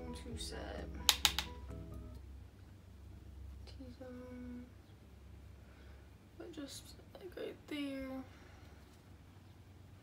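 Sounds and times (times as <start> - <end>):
soft background music: 0.0 - 5.0
sharp clicks of makeup containers: 1.1 - 1.6.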